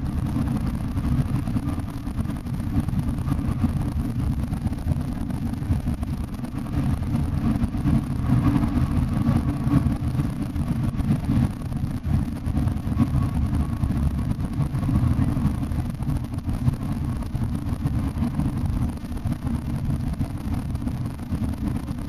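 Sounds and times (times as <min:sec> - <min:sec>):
bus engine and road rumble: 0:00.0 - 0:22.0.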